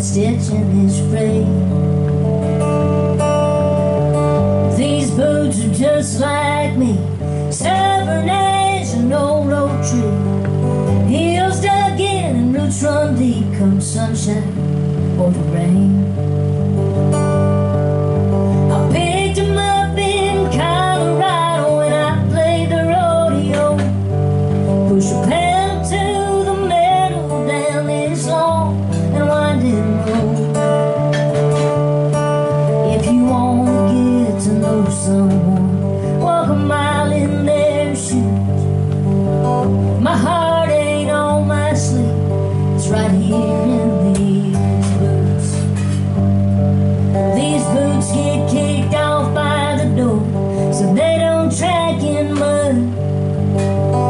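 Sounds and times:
woman singing: 0.0 - 2.0, 4.4 - 16.3, 18.5 - 31.7, 32.5 - 38.8, 39.5 - 46.2, 47.2 - 54.0
strummed acoustic guitar: 0.0 - 54.0.

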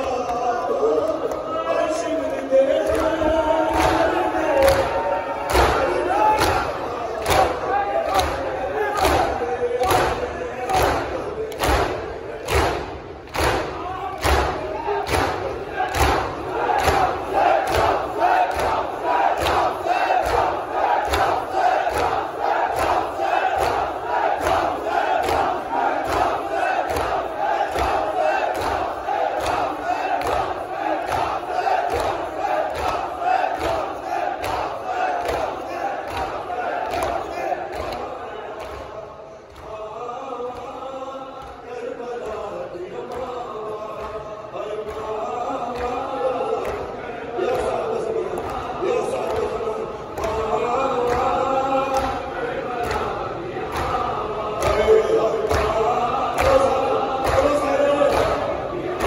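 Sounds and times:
crowd of men chanting: 0.0 - 59.0
chest beating in unison: 3.7 - 39.8.

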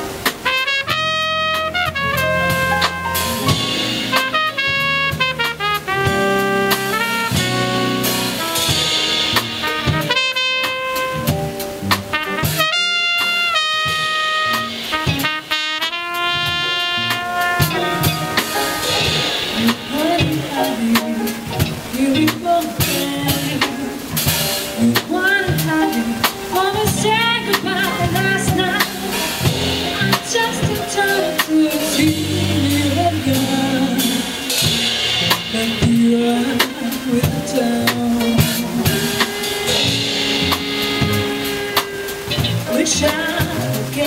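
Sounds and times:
jazz band playing: 0.0 - 44.0
trumpet: 0.0 - 44.0.

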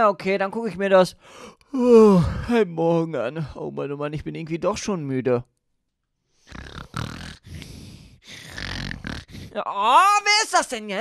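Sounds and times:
pigs grunting and snorting: 6.5 - 9.5.

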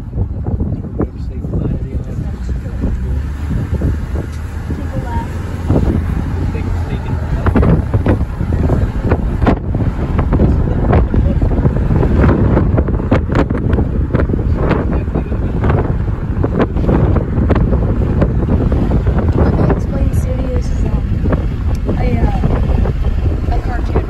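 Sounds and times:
car driving rumble: 0.0 - 24.0
wind buffeting microphone: 0.0 - 24.0.

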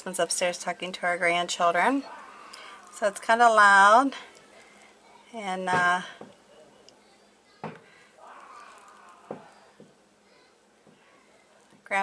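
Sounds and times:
muffled voices through ceiling: 0.0 - 12.0.

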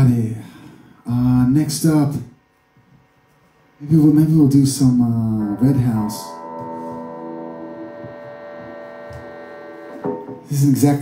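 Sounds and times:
man talking: 0.0 - 0.5, 1.1 - 2.3, 3.8 - 6.4, 10.4 - 11.0
held musical chord ringing: 5.3 - 10.5.

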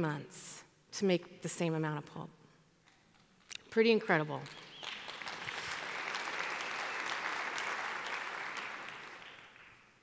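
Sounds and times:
audience applauding: 4.5 - 10.0.

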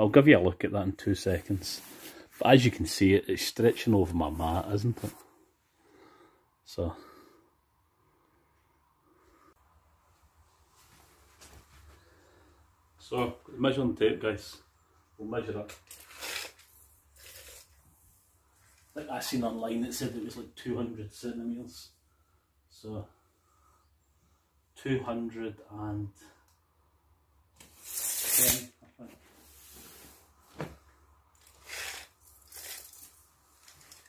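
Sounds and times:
rustling handling noise: 29.0 - 34.0.

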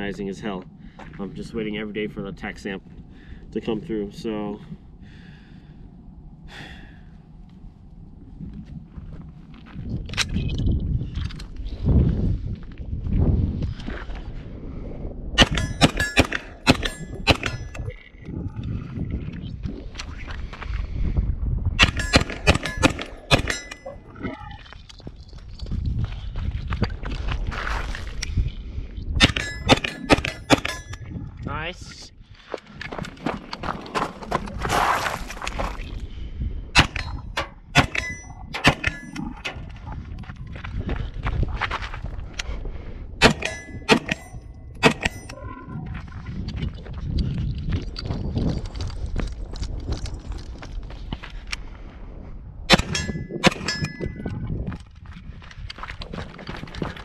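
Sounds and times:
gunshots: 15.4 - 17.7, 21.8 - 23.8, 37.8 - 39.4, 43.2 - 44.2
metallic ring: 15.4 - 17.8, 21.8 - 24.0, 29.2 - 31.1, 37.8 - 39.4, 43.2 - 45.5, 52.7 - 54.4.

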